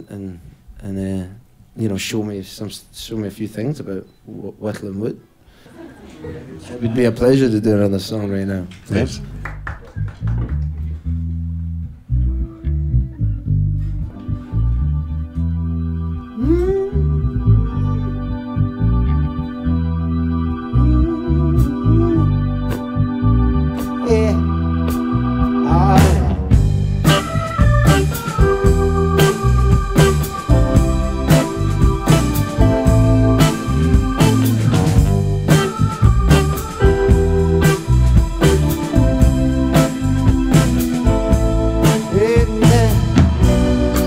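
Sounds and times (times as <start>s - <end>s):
electric guitar: 9.9s - 44.0s
electric bass riff: 10.2s - 44.0s
sustained organ chord: 14.0s - 44.0s
drum and cymbal hits: 26.0s - 44.0s.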